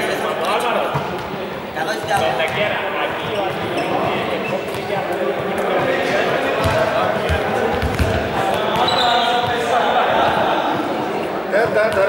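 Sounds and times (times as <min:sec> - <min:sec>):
voices talking: 0:00.0 - 0:12.0
basketballs bouncing on floor: 0:02.0 - 0:05.1, 0:05.8 - 0:11.0.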